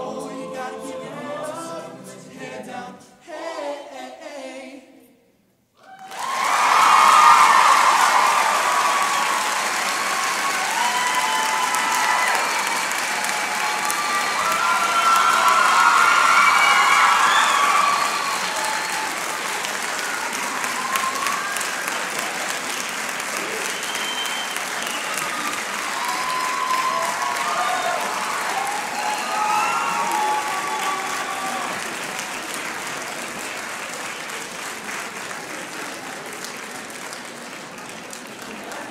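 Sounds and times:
whoops and shouts: 5.8 - 19.3, 20.0 - 21.8, 24.9 - 31.8
audience applauding: 5.8 - 38.9.

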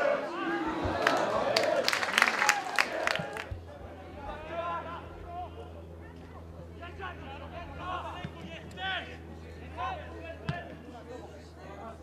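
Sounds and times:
footballers shouting: 0.0 - 5.8
steady low hum: 0.1 - 12.0.

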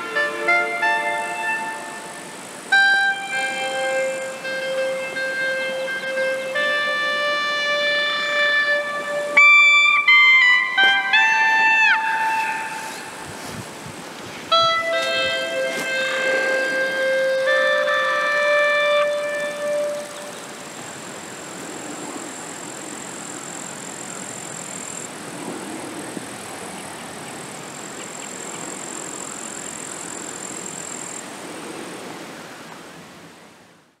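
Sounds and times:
faint high steady tone: 0.0 - 13.4, 14.5 - 25.2, 26.8 - 31.4
clarinet playing held notes: 0.0 - 20.7
outdoor background hiss: 0.0 - 34.0.

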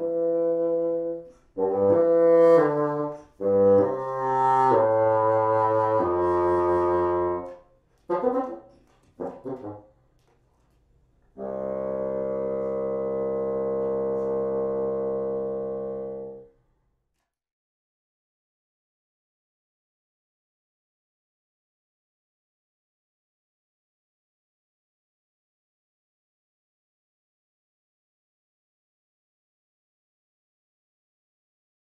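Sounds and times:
solo bassoon playing: 0.0 - 9.9, 11.4 - 16.5.

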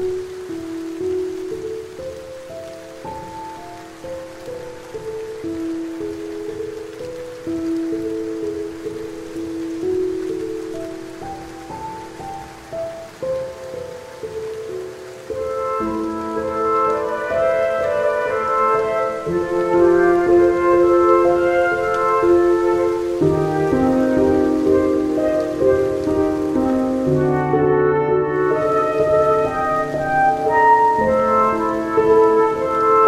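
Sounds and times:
rain pattering on leaves: 0.0 - 33.0
slow calm instrumental music: 0.0 - 33.0.

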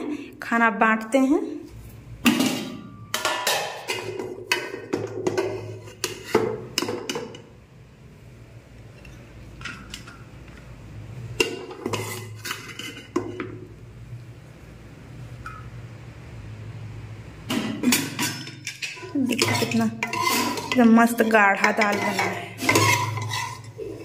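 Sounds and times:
ladle clinking against pot and plate: 17.5 - 24.0.

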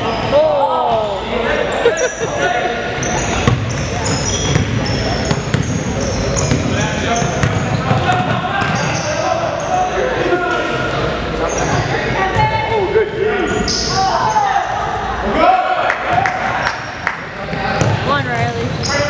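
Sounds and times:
sneakers squeaking: 0.0 - 10.8, 11.4 - 12.7, 13.3 - 15.0, 17.8 - 19.0.

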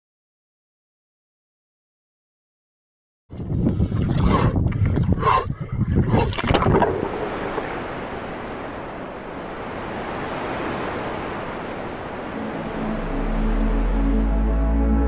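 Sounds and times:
waves rushing on open water: 6.0 - 14.5
electronic music with deep bass: 12.7 - 15.0.

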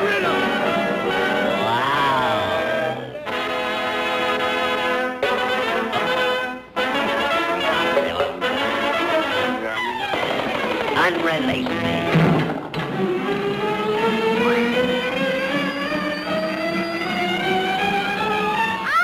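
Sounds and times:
orchestral brass playing held chords: 0.0 - 9.8.

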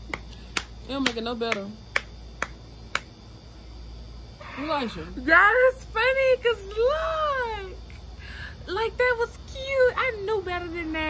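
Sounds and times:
low steady hum: 0.0 - 11.0
sharp snap-like clicks: 0.1 - 3.2.

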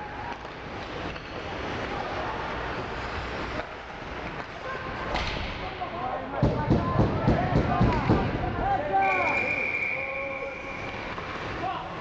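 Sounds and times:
skates scraping ice: 0.2 - 5.2, 9.2 - 12.0.

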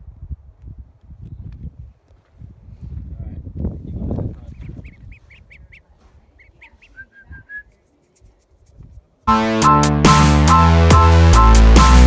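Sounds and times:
ducklings peeping: 4.4 - 7.5.

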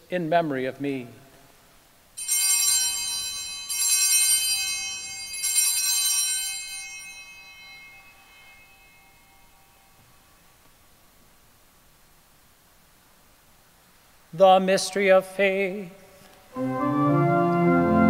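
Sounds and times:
bells ringing: 2.2 - 10.6.

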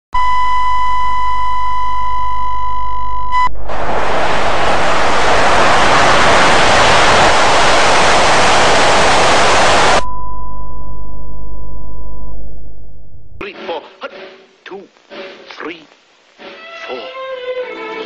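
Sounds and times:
low hum: 0.2 - 13.4
television static hiss: 3.7 - 10.0, 14.4 - 17.2.

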